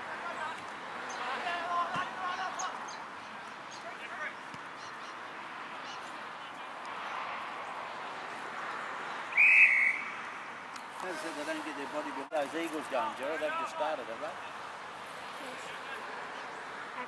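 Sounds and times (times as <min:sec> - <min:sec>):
umpire's whistle blast: 0:09.4 - 0:10.1.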